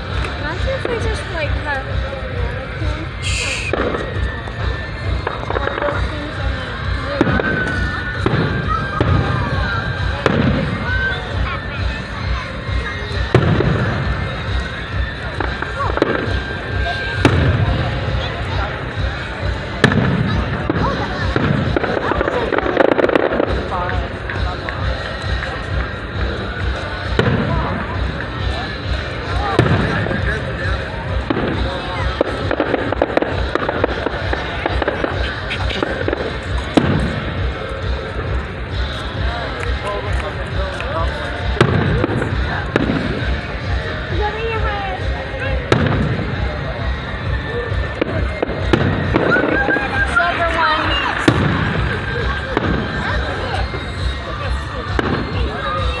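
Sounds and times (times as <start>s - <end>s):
chatter of onlookers: 0.0s - 56.0s
fireworks bangs: 0.0s - 56.0s.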